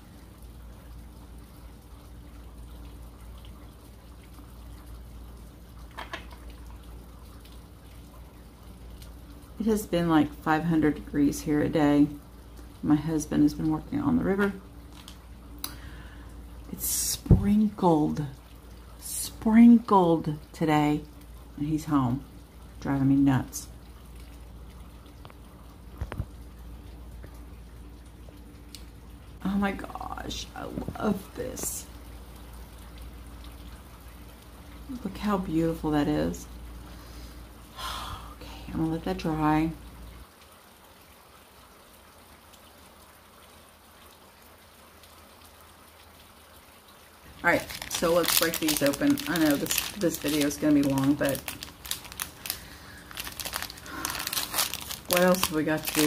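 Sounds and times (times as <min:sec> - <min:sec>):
steady low hum: 0:00.0 - 0:40.4
plastic packaging crinkling: 0:47.3 - 0:56.0.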